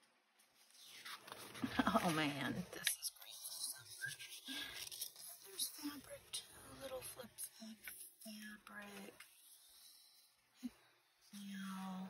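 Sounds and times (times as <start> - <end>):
paper and fabric rustling: 0.3 - 8.0.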